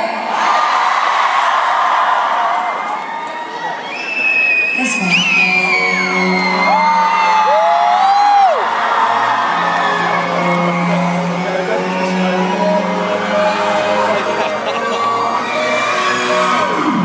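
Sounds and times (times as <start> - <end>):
crowd cheering: 0.0 - 17.0
fans screaming and whooping: 0.3 - 17.0
live concert music: 2.5 - 17.0.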